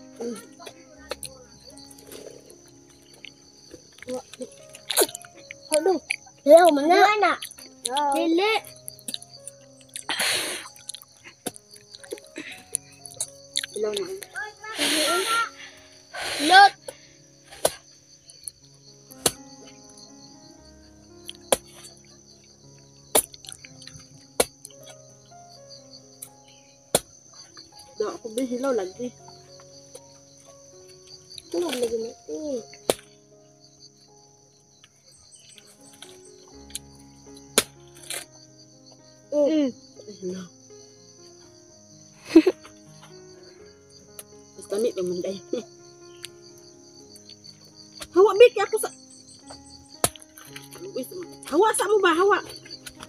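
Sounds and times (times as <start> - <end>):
crickets chirring: 0.0 - 53.0
faint music: 0.0 - 53.0
insects trilling: 0.0 - 53.0.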